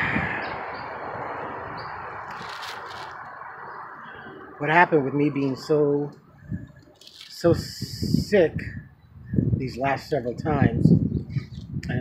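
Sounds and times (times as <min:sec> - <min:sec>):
outdoor background noise: 0:00.0 - 0:12.0
brief rustle: 0:02.3 - 0:03.2.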